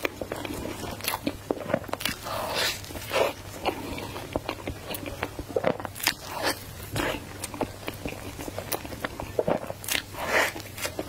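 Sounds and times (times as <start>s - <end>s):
chewing and mouth sounds: 0.0s - 11.0s.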